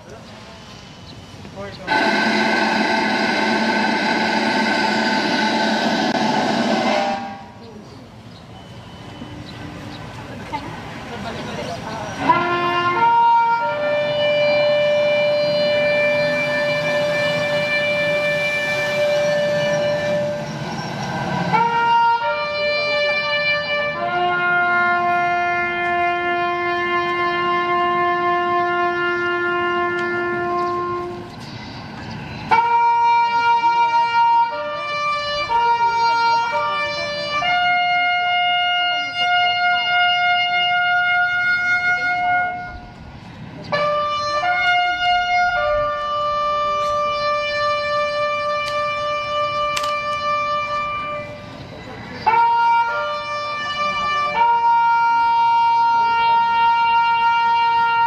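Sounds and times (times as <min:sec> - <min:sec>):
wind instrument long held notes: 0:01.9 - 0:07.8, 0:12.2 - 0:31.4, 0:32.4 - 0:58.0.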